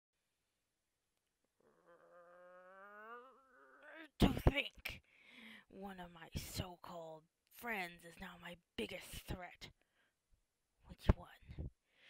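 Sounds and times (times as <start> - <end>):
person growling: 1.6 - 4.2.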